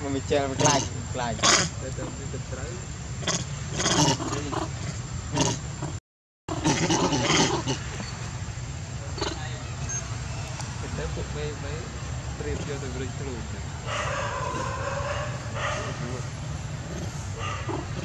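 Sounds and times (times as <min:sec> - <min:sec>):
monkeys giving harsh calls: 0:00.4 - 0:02.3, 0:03.2 - 0:08.2, 0:09.1 - 0:10.2, 0:13.8 - 0:18.0.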